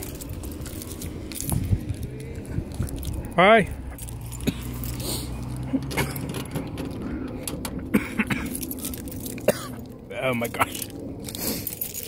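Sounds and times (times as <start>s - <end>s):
footsteps: 0.0s - 7.4s
keys jangling: 0.0s - 7.6s, 8.2s - 12.0s.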